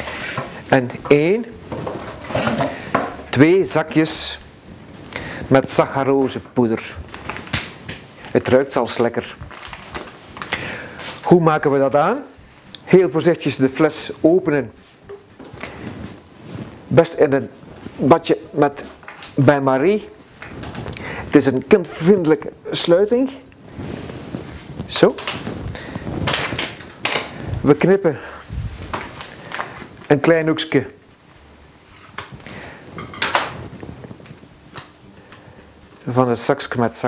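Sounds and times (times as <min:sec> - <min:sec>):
plastic cap scraping: 0:01.7 - 0:03.2
plastic packet crinkling: 0:07.1 - 0:11.2.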